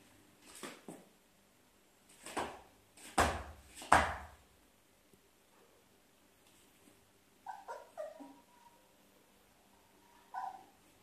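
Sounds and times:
puppy whimpering: 7.4 - 8.9, 9.8 - 10.8.

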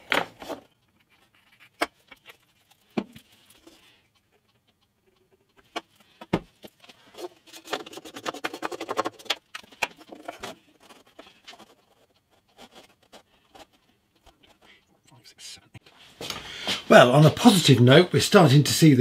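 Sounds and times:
small clicks and rubbing: 0.3 - 15.1
wooden pieces knocking: 5.6 - 12.0.

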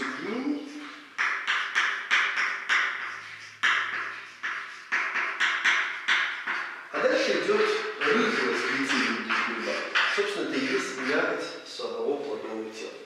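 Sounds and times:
chalk tapping and scratching on blackboard: 0.8 - 11.6.

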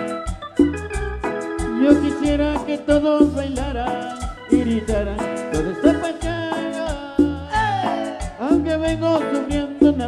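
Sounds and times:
live band dance music: 0.0 - 10.0
pulsing bass line: 0.3 - 9.2.

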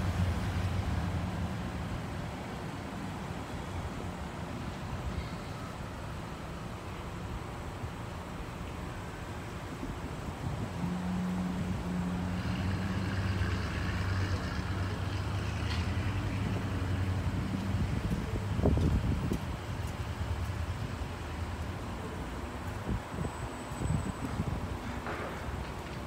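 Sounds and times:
vehicle engine humming: 0.0 - 26.0.

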